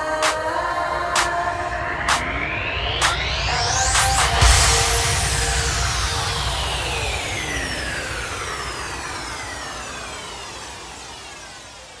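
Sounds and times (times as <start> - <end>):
hissing sweep with falling glides: 0.1 - 12.0.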